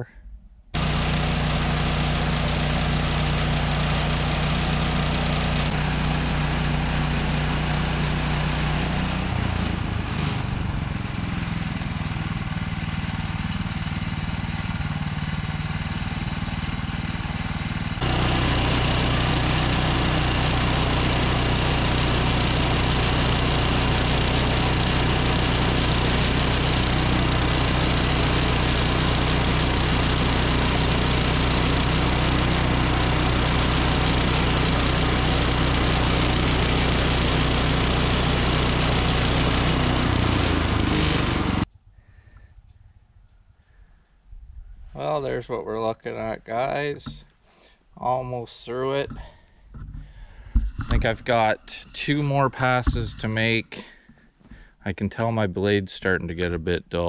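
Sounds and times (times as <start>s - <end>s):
sawmill gas engine running: 0.8s - 41.7s, 46.6s - 54.7s
band blade cutting wood: 18.0s - 41.6s, 50.6s - 53.5s.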